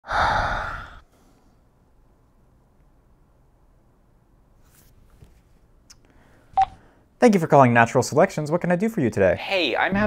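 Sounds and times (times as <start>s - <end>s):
man sighing heavily: 0.0s - 1.1s.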